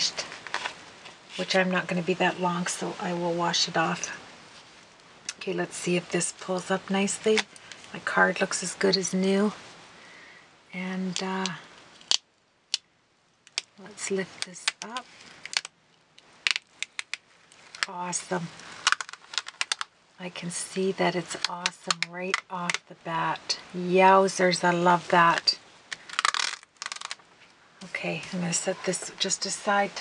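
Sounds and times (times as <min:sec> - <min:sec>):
person speaking: 0:01.3 - 0:04.2, 0:05.3 - 0:09.6, 0:10.7 - 0:11.7, 0:13.7 - 0:15.2, 0:17.7 - 0:18.9, 0:20.2 - 0:25.6, 0:27.8 - 0:30.0
small craft items clattering: 0:16.5 - 0:19.9, 0:26.0 - 0:27.2.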